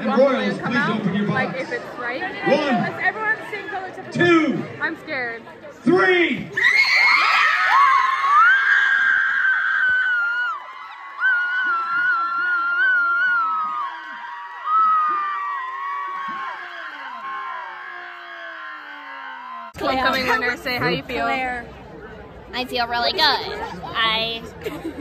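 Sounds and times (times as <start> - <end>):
crowd cheering: 6.5 - 20.4
people screaming in excitement: 6.6 - 19.8.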